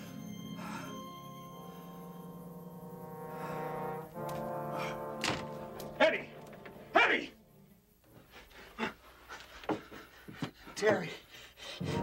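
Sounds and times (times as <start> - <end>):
brass-like film score chord: 0.0 - 7.8.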